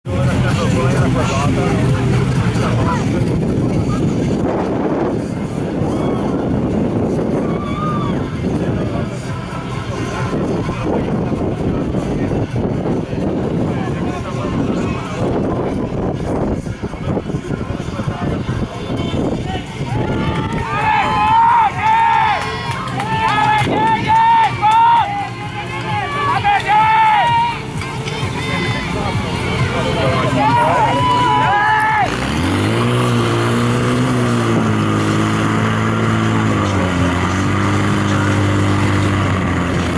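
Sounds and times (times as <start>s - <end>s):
people talking: 0.0s - 6.8s, 7.4s - 39.9s
crowd noise: 0.0s - 39.9s
spectators cheering: 7.3s - 8.4s, 19.5s - 34.1s
high-pitched drawn-out shouts: 19.9s - 32.9s
pump engine idling: 34.3s - 39.9s.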